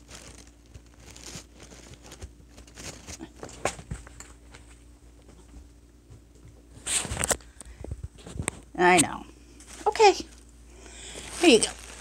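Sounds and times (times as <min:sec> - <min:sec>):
faint rustling: 0:09.6 - 0:12.0.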